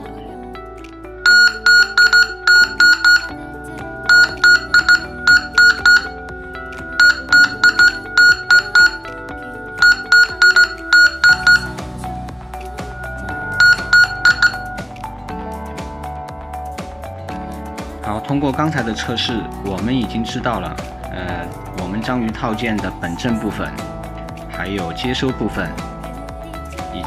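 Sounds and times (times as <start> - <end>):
background music: 0.0 - 27.0
high-pitched morse beeps: 1.2 - 3.4, 4.1 - 6.2, 7.0 - 9.1, 9.8 - 11.8, 13.2 - 14.9.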